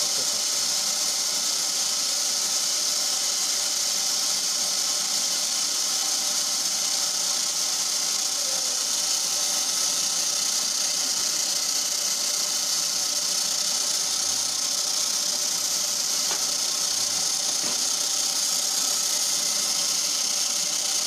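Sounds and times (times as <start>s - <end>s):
machine motor hiss and hum: 0.0s - 21.0s.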